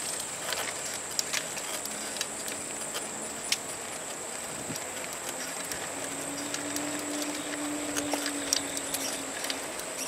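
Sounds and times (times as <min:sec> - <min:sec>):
light steady hiss: 0:00.0 - 0:10.0
low steady hum: 0:00.0 - 0:10.0
small clicks and taps: 0:00.5 - 0:10.0.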